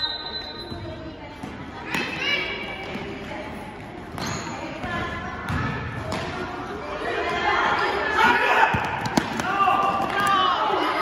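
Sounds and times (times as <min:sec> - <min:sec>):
voices shouting and echoing: 0:00.0 - 0:11.0
basketball bouncing on gym floor: 0:04.1 - 0:06.3.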